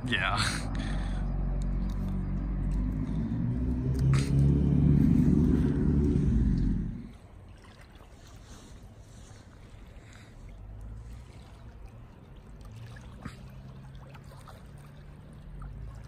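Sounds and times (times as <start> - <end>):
car engine and road noise: 0.0 - 7.4, 8.7 - 16.0
faint outdoor background: 0.0 - 16.0.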